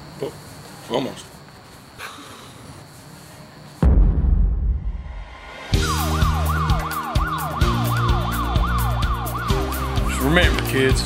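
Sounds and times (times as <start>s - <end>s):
deep boom: 3.8s - 6.6s
music with heavy beat and bass: 5.4s - 11.0s
police siren yelp: 5.8s - 11.0s.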